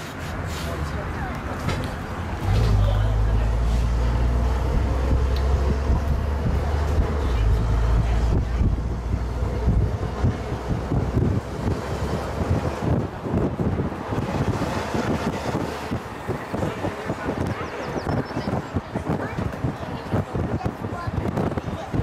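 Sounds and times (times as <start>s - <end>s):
bus low rumble: 0.0s - 22.0s
wind buffeting microphone: 1.0s - 22.0s.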